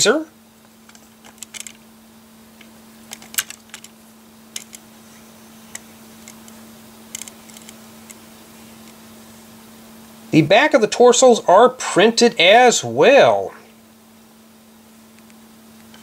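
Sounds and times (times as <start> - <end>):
plastic turntable clicking: 5.7 - 8.2.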